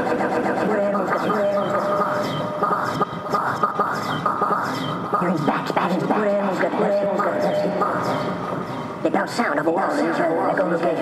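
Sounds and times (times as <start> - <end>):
chopped voice fragments: 0.0 - 11.0
modular synthesizer music: 0.0 - 11.0.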